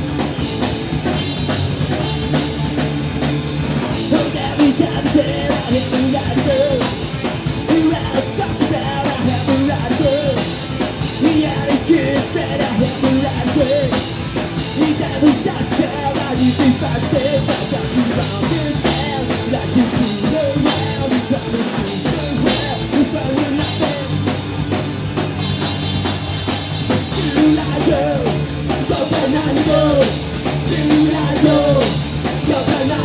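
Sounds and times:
bass guitar: 0.0s - 33.0s
drum kit with cymbals: 0.0s - 33.0s
electric guitar: 0.0s - 33.0s.

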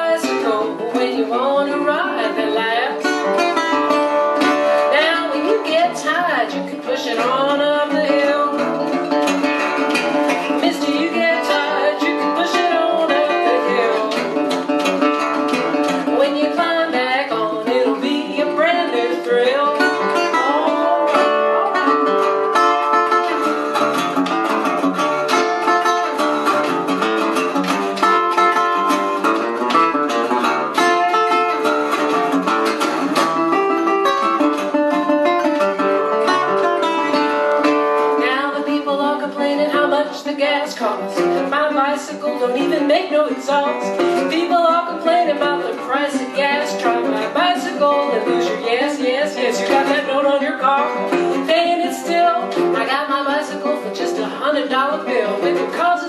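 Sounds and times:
resonator guitar fingerpicking: 0.0s - 56.0s.

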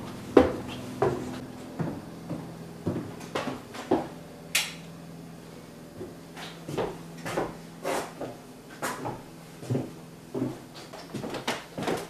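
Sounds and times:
steady low hum: 0.0s - 12.0s
sharp click: 4.5s - 4.9s
footsteps: 6.0s - 12.0s.

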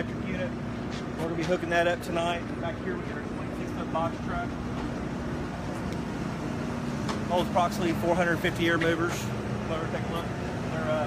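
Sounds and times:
motor hum: 0.0s - 11.0s.

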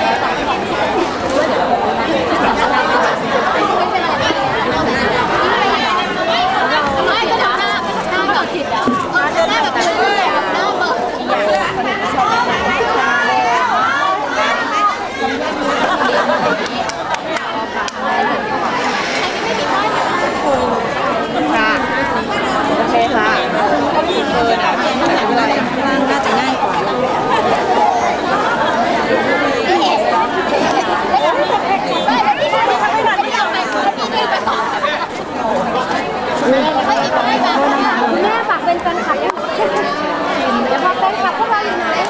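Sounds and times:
babble of overlapping voices: 0.0s - 42.0s.

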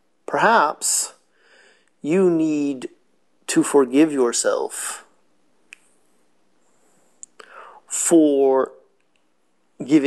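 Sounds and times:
man speaking: 0.3s - 1.2s, 2.0s - 5.2s, 7.9s - 8.8s, 9.8s - 10.0s
breathy intake of breath: 1.3s - 1.9s, 7.4s - 7.9s.

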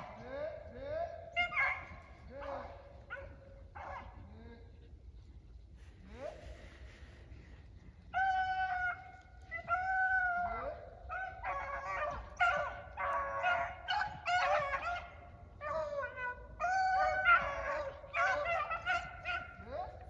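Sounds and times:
dogs baying: 0.0s - 4.3s, 8.2s - 20.0s.

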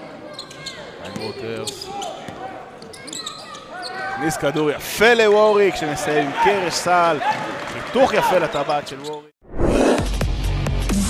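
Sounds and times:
voices in a hall: 0.0s - 9.2s
sneakers squeaking on floor: 0.2s - 4.8s.

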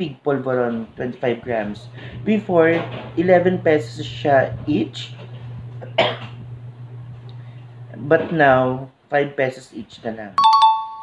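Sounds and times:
steady low hum: 0.6s - 8.3s
person coughing: 5.8s - 6.4s.

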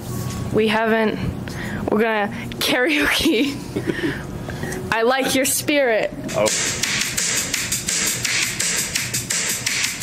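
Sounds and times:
steady drum beat: 6.2s - 10.0s.

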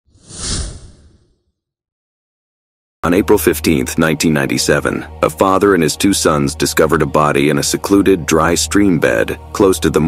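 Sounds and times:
whoosh: 0.1s - 1.6s.

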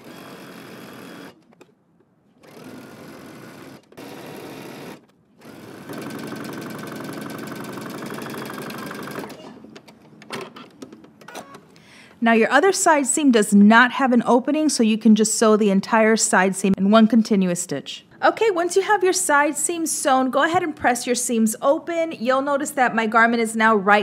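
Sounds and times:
sewing machine stitching: 0.0s - 1.6s, 2.4s - 11.6s.

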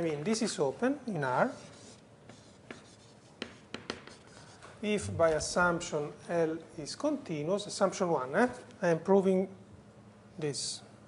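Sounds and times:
faint scraping of writing: 1.4s - 4.9s
taps on a board: 3.4s - 4.2s
man's voice: 4.9s - 6.0s.

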